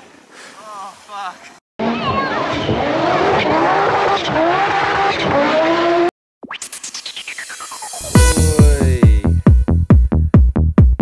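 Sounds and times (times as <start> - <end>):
rally car engine revving: 1.8 - 6.1.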